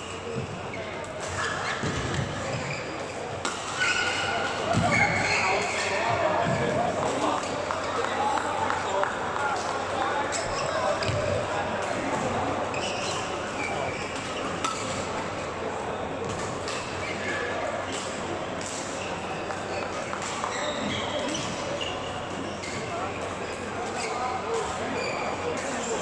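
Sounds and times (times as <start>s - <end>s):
echoing chatter of voices: 0.0s - 26.0s
players' footsteps on court: 4.6s - 14.0s.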